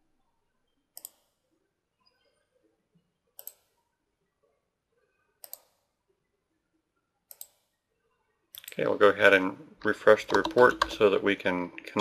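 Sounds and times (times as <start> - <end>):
computer mouse clicking: 1.0 - 1.4, 3.4 - 3.8, 5.4 - 5.9, 7.3 - 7.7, 10.2 - 11.1.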